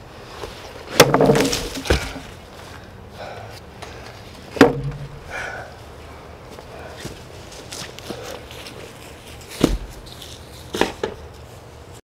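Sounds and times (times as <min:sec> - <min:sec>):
watermelon being smashed: 0:01.0 - 0:02.2.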